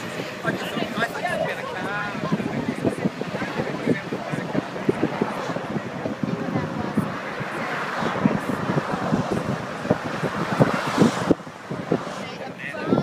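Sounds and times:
road and traffic noise: 0.0s - 13.0s
wind buffeting microphone: 0.0s - 13.0s.

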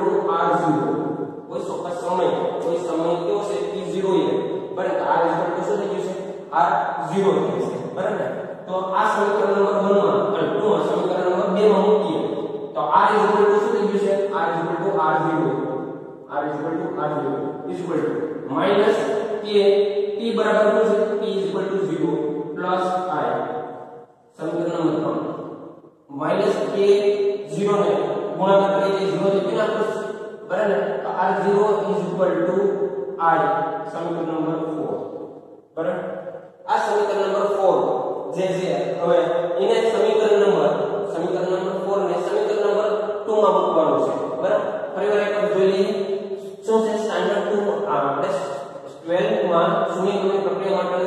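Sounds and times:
man lecturing: 0.0s - 15.7s, 16.3s - 23.4s, 24.4s - 25.2s, 26.1s - 35.0s, 35.8s - 36.0s, 36.7s - 51.0s
man talking: 0.0s - 23.4s, 24.4s - 25.2s, 26.1s - 35.0s, 35.8s - 36.0s, 36.7s - 51.0s.

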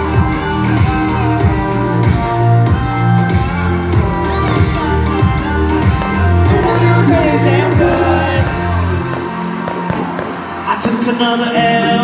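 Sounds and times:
deep bass: 0.0s - 9.5s
person singing: 0.0s - 9.5s, 10.6s - 12.0s
live pop band: 0.0s - 12.0s.

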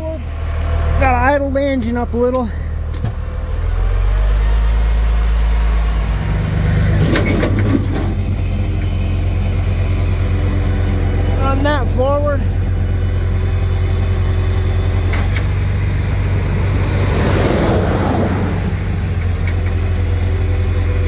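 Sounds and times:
truck engine running: 0.0s - 21.0s.

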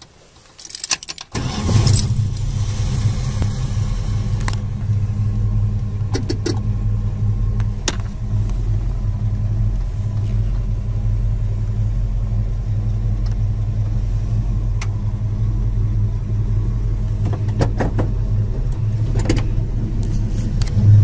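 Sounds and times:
car engine running at low speed: 1.4s - 21.0s.

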